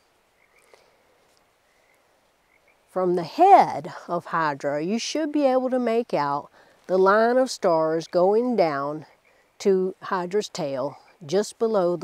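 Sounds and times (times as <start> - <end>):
low hiss: 0.0 - 12.0
night animals chirping: 0.3 - 0.9, 1.7 - 2.9.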